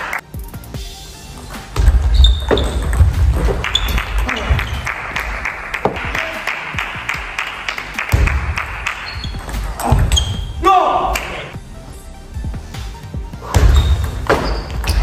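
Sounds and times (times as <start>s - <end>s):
background music: 0.0s - 15.0s
person shouting: 10.6s - 11.4s.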